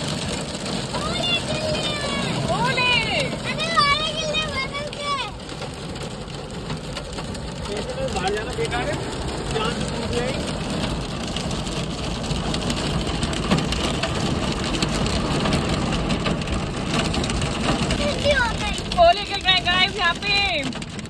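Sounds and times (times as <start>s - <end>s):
rain and hail on car roof: 0.0s - 21.0s
voices: 0.9s - 5.6s, 7.5s - 10.5s, 17.9s - 20.8s.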